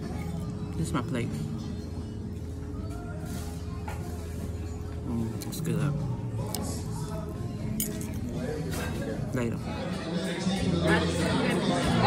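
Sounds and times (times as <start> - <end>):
background music: 0.0 - 12.0
restaurant dining room hum: 0.0 - 12.0.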